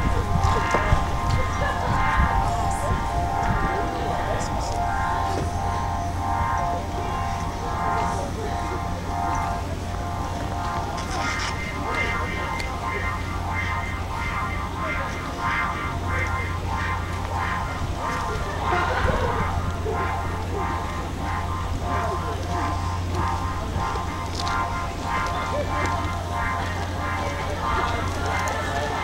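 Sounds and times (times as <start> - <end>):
electric blower fan drone: 0.0 - 29.0
music with regular pulse: 0.0 - 29.0.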